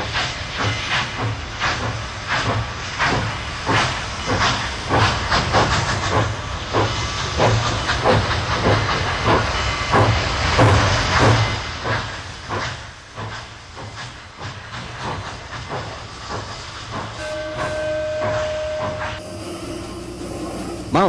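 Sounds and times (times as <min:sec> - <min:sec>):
steam hiss: 0:00.0 - 0:21.0
steam locomotive chuffing: 0:00.0 - 0:21.0.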